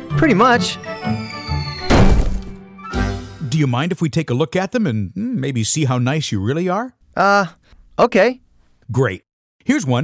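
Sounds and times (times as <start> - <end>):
descending whistle: 0.6 - 1.9
heavy thud: 1.9 - 2.6
low thump: 1.9 - 2.6.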